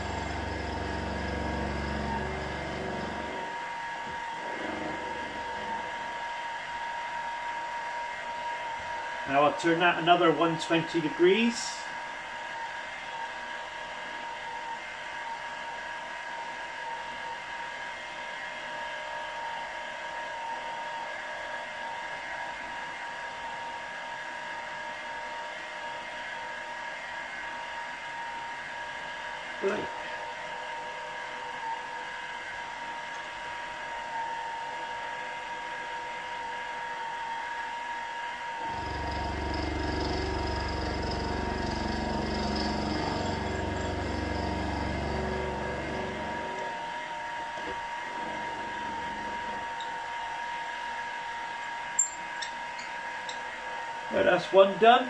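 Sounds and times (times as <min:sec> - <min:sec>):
milling machine spindle whine: 0:00.0 - 0:55.0.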